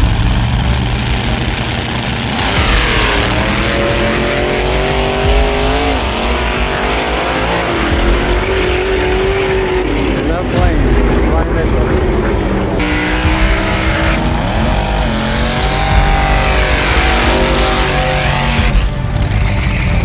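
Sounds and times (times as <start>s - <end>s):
race cars accelerating: 0.0s - 20.0s.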